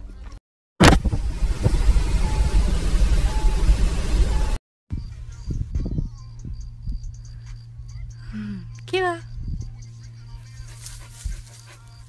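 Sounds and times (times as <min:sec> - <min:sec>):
car road and wind rumble: 0:00.8 - 0:10.4.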